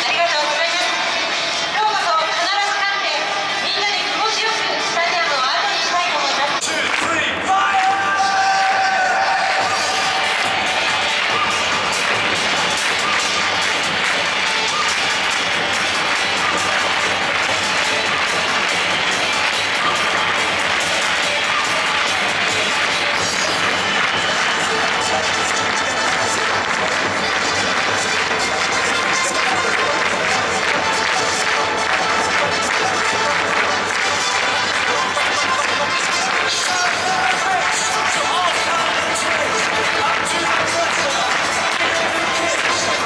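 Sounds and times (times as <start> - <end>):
music playing: 0.0 - 43.0
stadium crowd noise: 0.0 - 43.0.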